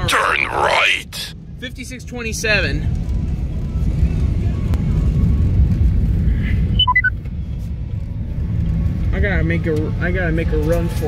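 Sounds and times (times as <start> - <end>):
car road and engine rumble: 0.0 - 11.0
short electronic beeps: 6.8 - 7.1.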